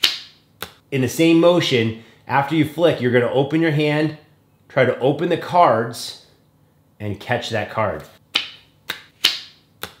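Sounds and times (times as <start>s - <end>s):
playing card snapping: 0.0s - 0.8s, 8.3s - 10.0s.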